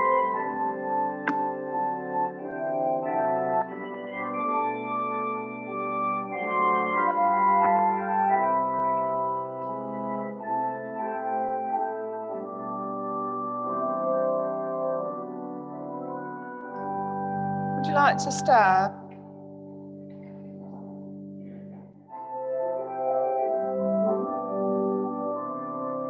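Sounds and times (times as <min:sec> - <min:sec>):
organ playing hymn chords: 0:00.0 - 0:26.0.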